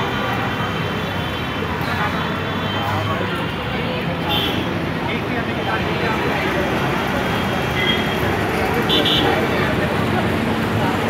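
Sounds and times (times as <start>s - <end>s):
people talking: 0.0s - 11.0s
road traffic: 0.0s - 11.0s.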